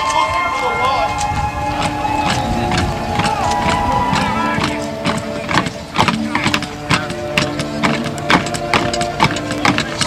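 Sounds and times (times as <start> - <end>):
voices: 0.0 - 10.0
sharp marching knocks: 0.3 - 10.0
steady drone: 1.0 - 10.0.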